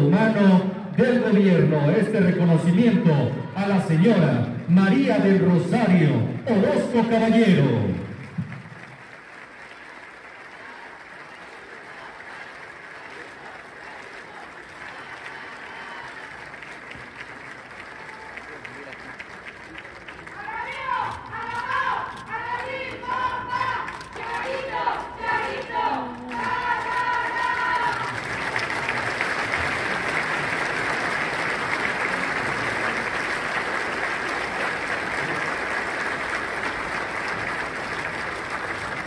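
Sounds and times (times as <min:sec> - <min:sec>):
audience clapping: 0:03.6 - 0:39.0.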